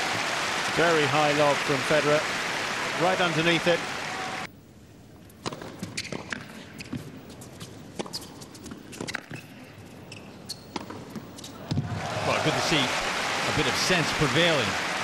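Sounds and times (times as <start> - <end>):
crowd noise: 0.0 - 4.5, 11.6 - 15.0
tennis ball bouncing on hard court: 10.6 - 11.9.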